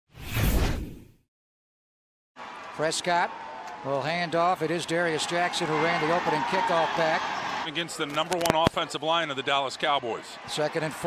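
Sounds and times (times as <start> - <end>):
whoosh: 0.1 - 1.1.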